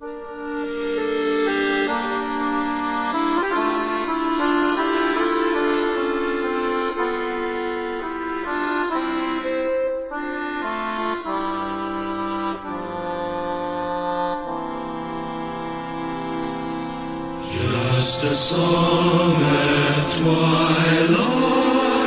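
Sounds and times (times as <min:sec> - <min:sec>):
accordion playing slow chords: 0:00.0 - 0:22.0.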